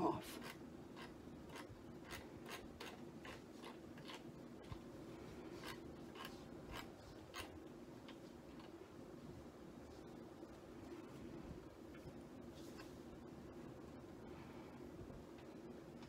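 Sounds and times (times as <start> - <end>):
low room hum: 0.0 - 16.0
soft ticks and rubbing: 0.2 - 9.0, 9.8 - 13.3.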